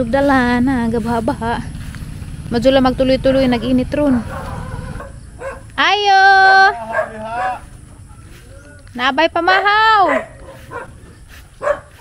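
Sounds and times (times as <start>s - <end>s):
dog barking: 4.2s - 5.7s, 6.8s - 7.7s, 9.5s - 11.0s, 11.6s - 12.0s.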